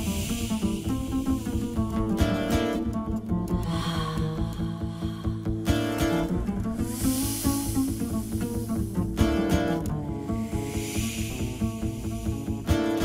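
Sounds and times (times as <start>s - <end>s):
breathy hissing vocal swells: 0.0s - 13.0s
plucked double bass: 0.0s - 13.0s.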